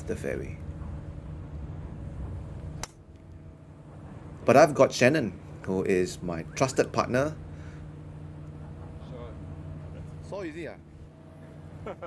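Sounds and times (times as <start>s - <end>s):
low outdoor hum: 0.0s - 12.0s.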